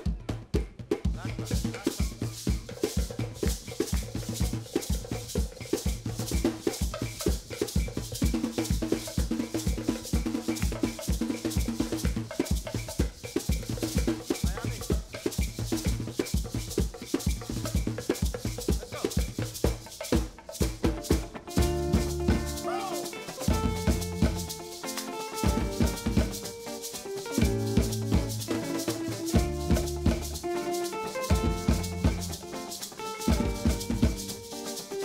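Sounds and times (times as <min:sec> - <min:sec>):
hand drums: 0:00.0 - 0:35.0
maracas: 0:00.0 - 0:35.0
bass guitar notes: 0:21.6 - 0:22.9, 0:23.5 - 0:24.6, 0:25.5 - 0:26.5, 0:27.4 - 0:28.5, 0:31.3 - 0:32.3.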